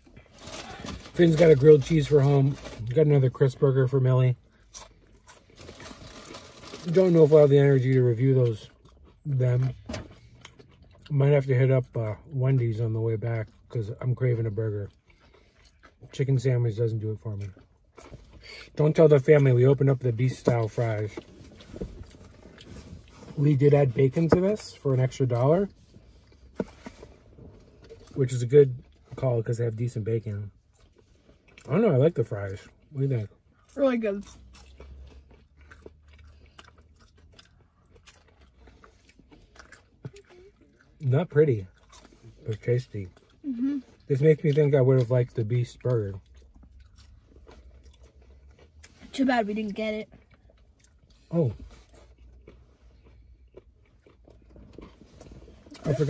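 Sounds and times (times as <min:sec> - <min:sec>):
person chewing and crunching food: 0:00.0 - 0:29.2, 0:30.3 - 0:49.2, 0:50.0 - 0:56.0
low hum inside car: 0:00.0 - 0:56.0.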